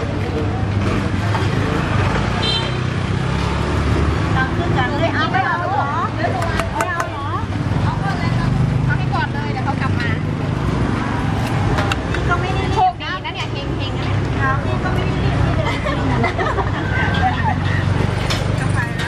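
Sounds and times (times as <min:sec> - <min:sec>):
passing traffic rumble: 0:00.0 - 0:19.0
people talking: 0:04.3 - 0:10.2, 0:12.1 - 0:17.8, 0:18.5 - 0:19.0.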